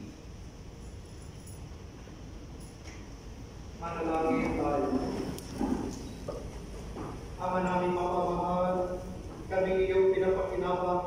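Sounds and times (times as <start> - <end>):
person speaking: 3.8 - 11.0.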